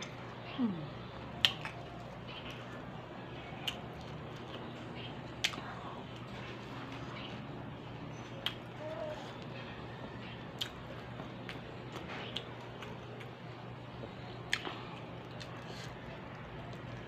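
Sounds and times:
person chewing soft food: 0:00.0 - 0:07.5, 0:08.4 - 0:17.0.

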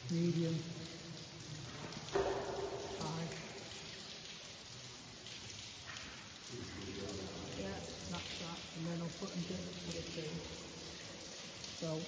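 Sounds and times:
water dripping and trickling: 0:00.0 - 0:12.0.

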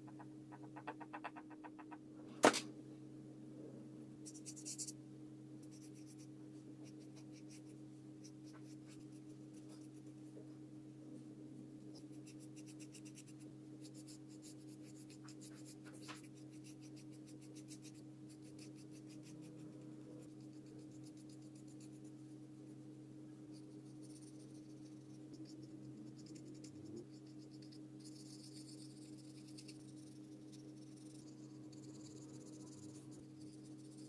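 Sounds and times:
low hum: 0:00.0 - 0:16.6, 0:17.2 - 0:34.0
paintbrush strokes on paper: 0:05.6 - 0:10.4.

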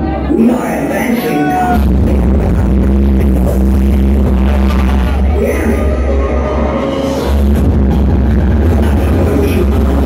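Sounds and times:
electronic dance music: 0:00.0 - 0:10.0
heavy steady bass: 0:00.0 - 0:10.0.

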